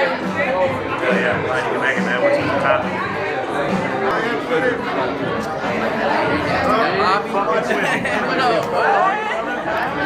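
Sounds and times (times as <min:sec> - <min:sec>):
overlapping indistinct chatter: 0:00.0 - 0:10.0.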